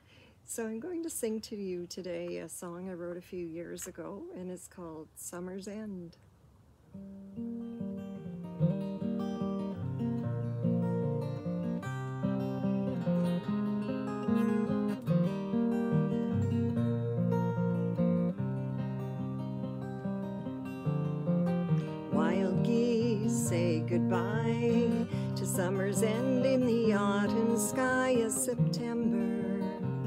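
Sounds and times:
acoustic guitar playing: 6.8s - 30.0s.

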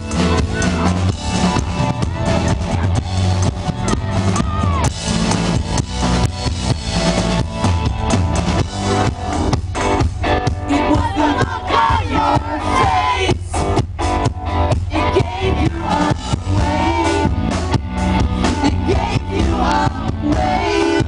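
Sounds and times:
drum kit: 0.0s - 21.0s
electric guitar: 0.0s - 21.0s.

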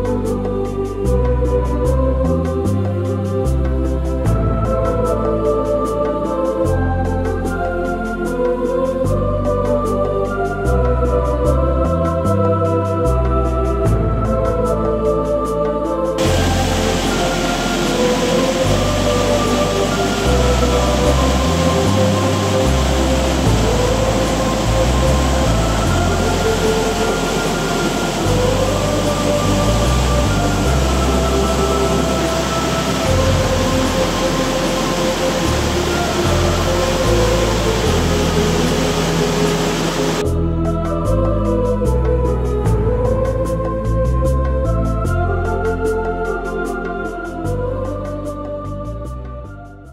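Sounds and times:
background music with bass notes: 0.0s - 49.9s
falling water rushing: 16.2s - 40.2s.

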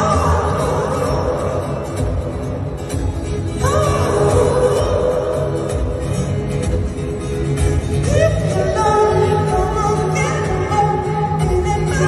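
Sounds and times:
live band music over loudspeakers: 0.0s - 12.0s.

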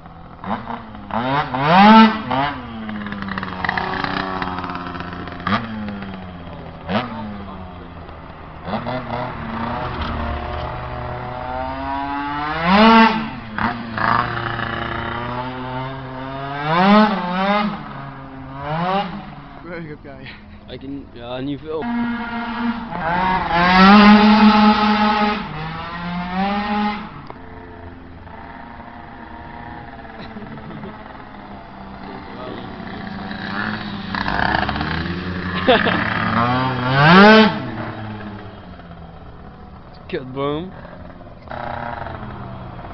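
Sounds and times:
scooter engine revving: 0.0s - 42.9s.

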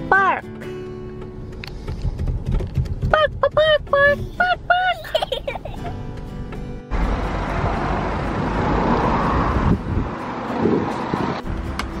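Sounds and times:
road vehicle rushing: 5.9s - 12.0s.

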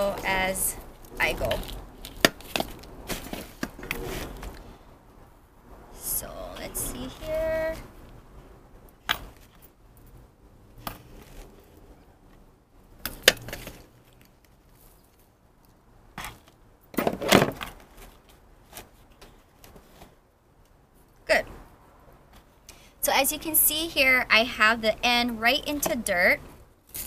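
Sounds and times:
soil rustling: 0.0s - 4.9s.

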